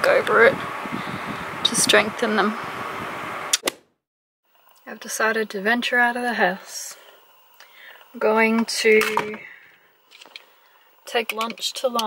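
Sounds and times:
steady background hiss: 4.5 - 12.0.

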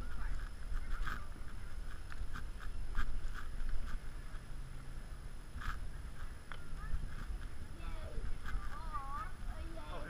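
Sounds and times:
faint children's voices: 0.0 - 10.0
camera handling noise: 0.3 - 4.4, 5.5 - 7.6.

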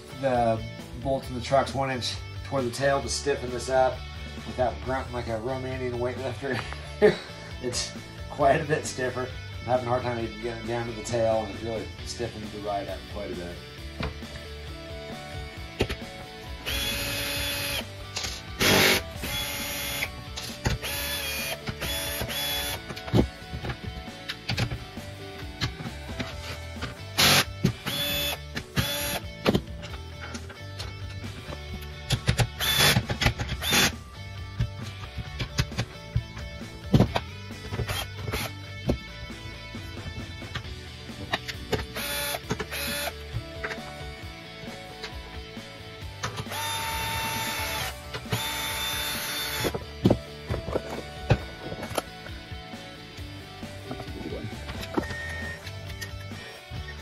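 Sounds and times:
background music: 0.0 - 57.0
cordless drill whirring: 16.6 - 20.1, 20.8 - 22.8, 27.2 - 29.2, 32.6 - 33.9, 37.8 - 38.6, 42.0 - 43.2, 46.5 - 49.7.

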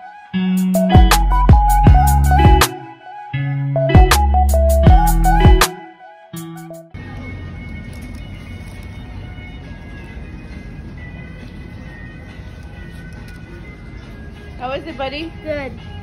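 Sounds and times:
faint music: 5.7 - 16.0
outdoor eating area background noise: 6.9 - 16.0.

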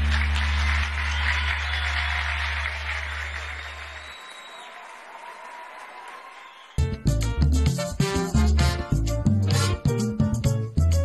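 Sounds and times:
audience applause: 0.0 - 6.9.

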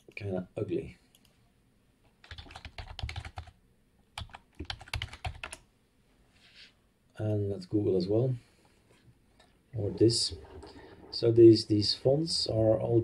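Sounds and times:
typing on computer keyboard: 2.2 - 3.6, 4.2 - 5.6.

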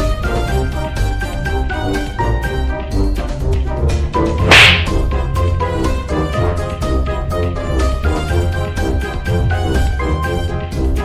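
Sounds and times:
background music: 0.0 - 11.0
loud swishing burst: 4.5 - 5.0.

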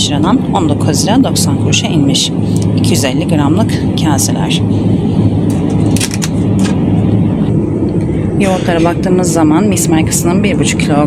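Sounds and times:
refrigerated cabinets humming: 0.0 - 11.0.

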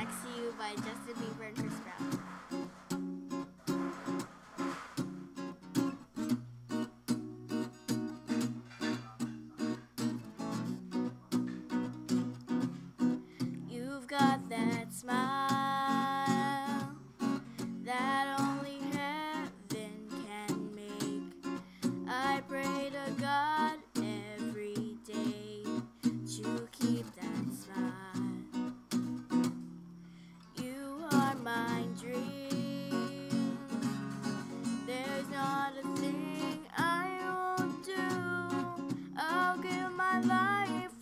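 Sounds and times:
acoustic guitar chords: 0.0 - 41.0.

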